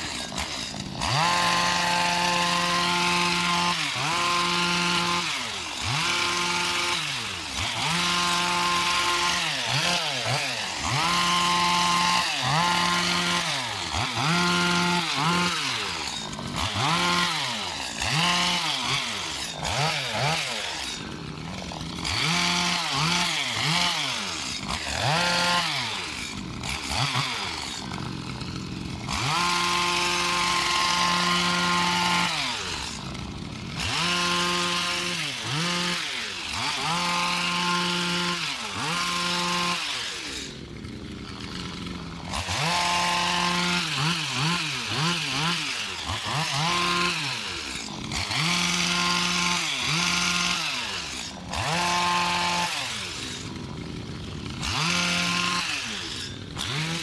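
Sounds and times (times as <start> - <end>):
hedge trimmer engine revving: 0.0 - 57.0.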